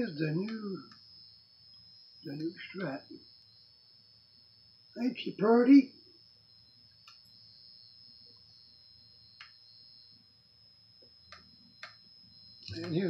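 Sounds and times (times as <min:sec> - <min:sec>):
faint high-pitched whine: 0:00.0 - 0:13.0
faint clicks: 0:07.0 - 0:07.3, 0:11.3 - 0:12.0.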